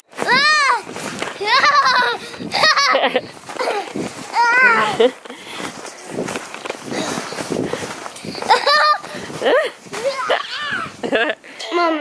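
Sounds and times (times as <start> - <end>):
boots scuffing in snow: 0.1 - 11.1
child squealing: 4.4 - 5.0, 10.0 - 11.0.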